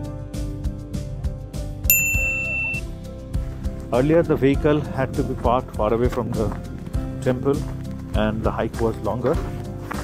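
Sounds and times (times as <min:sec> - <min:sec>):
background music: 0:00.0 - 0:10.0
short bright ding: 0:01.9 - 0:02.9.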